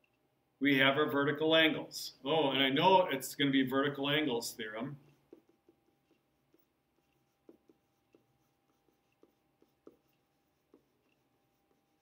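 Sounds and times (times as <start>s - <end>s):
stylus tapping on a tablet: 5.3s - 11.2s.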